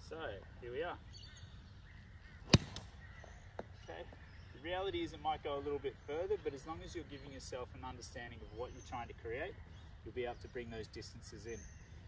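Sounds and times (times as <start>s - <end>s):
golf club striking ball: 2.5s - 2.9s.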